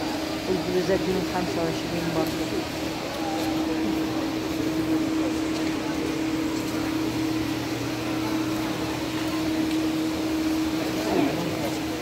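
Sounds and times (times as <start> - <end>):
even background noise: 0.0 - 12.0
steady mechanical hum: 0.0 - 12.0.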